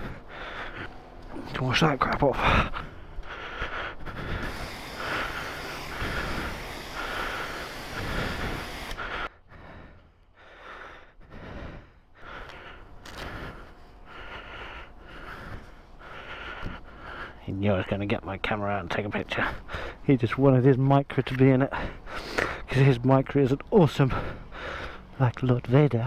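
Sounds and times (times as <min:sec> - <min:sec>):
jet-wash lance spraying water: 0:04.4 - 0:09.0.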